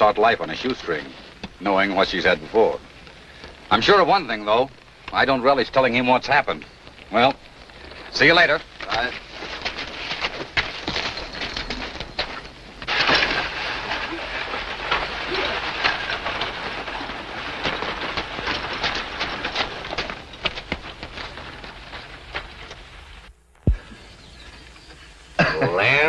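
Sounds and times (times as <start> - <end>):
horse hooves clattering on rocks: 0.0 - 26.0
steady hiss: 0.0 - 26.0.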